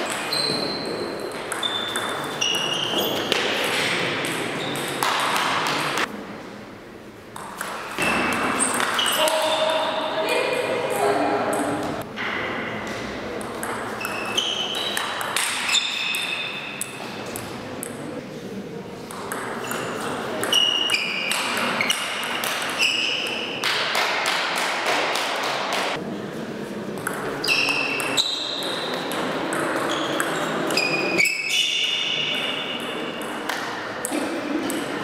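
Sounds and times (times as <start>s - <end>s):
table tennis ball hitting paddles: 0.0s - 6.1s, 7.3s - 9.8s, 11.5s - 18.1s, 19.0s - 26.0s, 27.0s - 31.1s, 32.4s - 35.0s.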